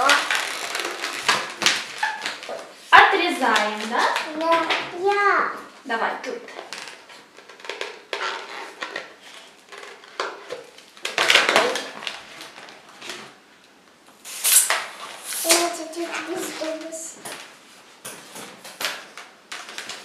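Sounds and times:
balloons rubbing and scraping: 0:00.0 - 0:03.0, 0:06.8 - 0:10.4.

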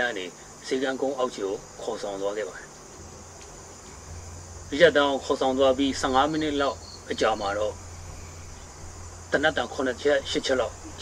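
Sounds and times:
man speaking: 0:00.0 - 0:02.7, 0:04.7 - 0:07.8, 0:09.3 - 0:11.0
faint high hiss: 0:00.0 - 0:11.0.

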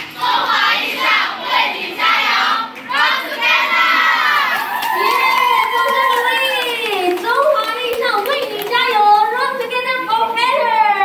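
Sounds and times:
young voices shouting a cheer: 0:02.9 - 0:06.9.

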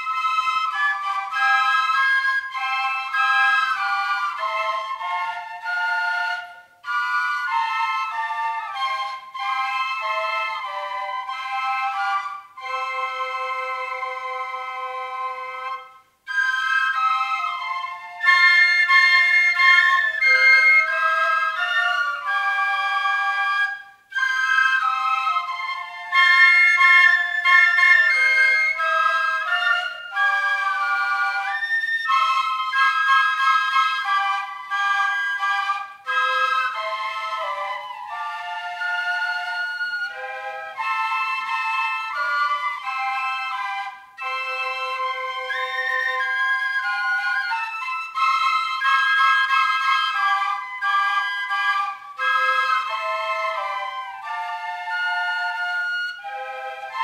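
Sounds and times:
flutes playing in harmony: 0:00.0 - 0:57.0.

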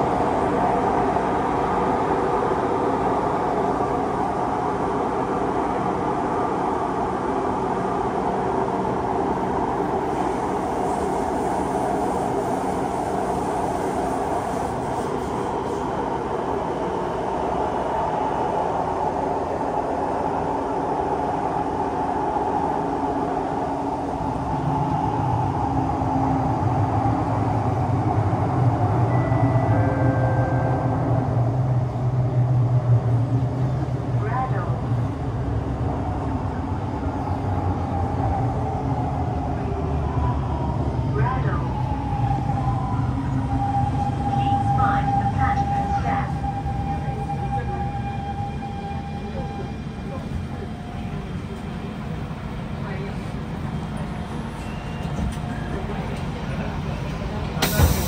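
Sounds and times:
train wheels rumbling: 0:41.8 - 0:58.0.

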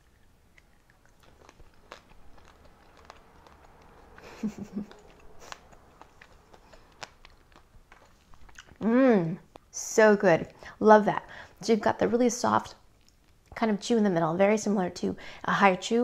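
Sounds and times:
candy crunching: 0:00.0 - 0:09.6.

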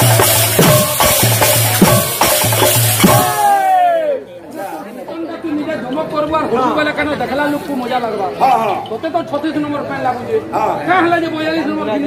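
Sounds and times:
voices chattering in a crowd: 0:00.0 - 0:12.0.

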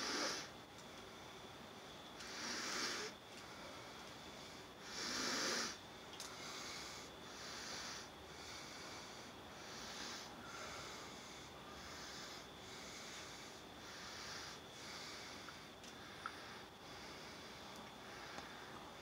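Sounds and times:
soft breathing: 0:02.2 - 0:19.0.

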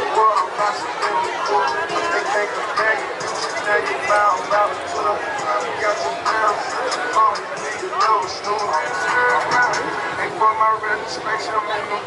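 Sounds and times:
music playing: 0:00.0 - 0:12.0
people talking in a crowd: 0:00.0 - 0:12.0.

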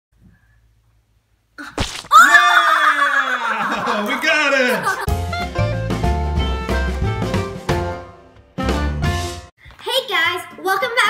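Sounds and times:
child screaming: 0:02.1 - 0:03.6.

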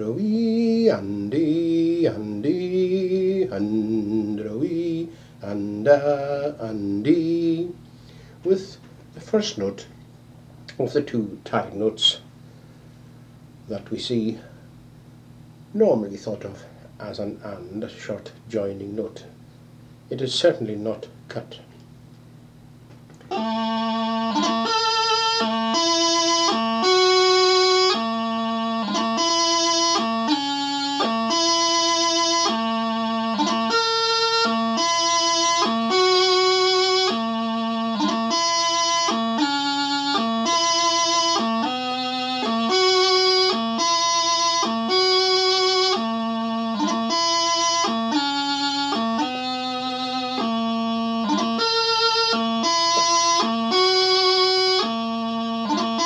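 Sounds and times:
practice chanter melody: 0:23.2 - 0:56.0.

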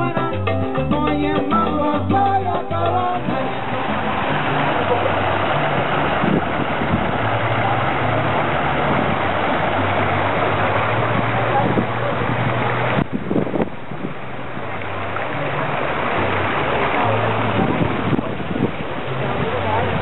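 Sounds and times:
fountain jets splashing: 0:01.2 - 0:20.0
crowd chatter: 0:01.6 - 0:13.7, 0:14.3 - 0:20.0.

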